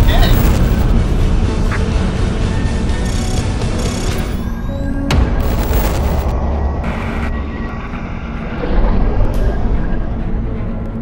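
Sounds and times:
rushing noise: 0.0 - 2.2, 5.1 - 11.0
deep loud rumble: 5.2 - 11.0.

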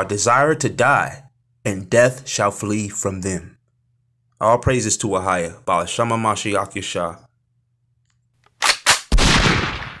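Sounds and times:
gunshots: 8.6 - 10.0
explosion with deep rumble: 9.2 - 10.0.

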